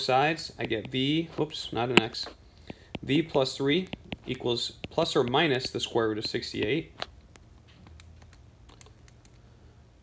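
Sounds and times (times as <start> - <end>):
room noise with slight hum: 0.0 - 10.0.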